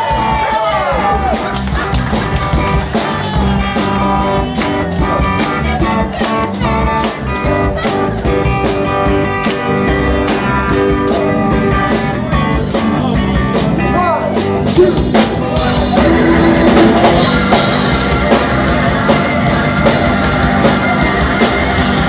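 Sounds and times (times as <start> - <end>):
electric guitar: 0.0 - 22.0
live band playing: 0.0 - 22.0.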